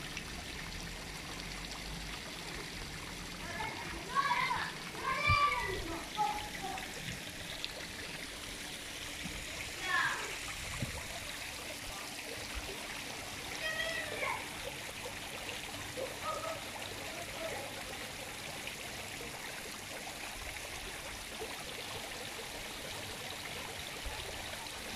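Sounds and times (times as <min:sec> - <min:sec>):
fountain water splashing: 0:00.0 - 0:24.9.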